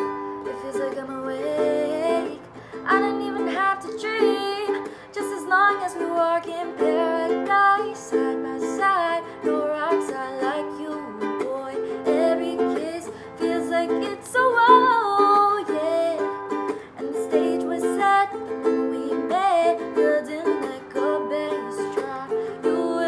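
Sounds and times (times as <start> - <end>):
ukulele strumming: 0.0 - 23.0
women singing pop ballad: 0.5 - 16.3, 17.0 - 23.0.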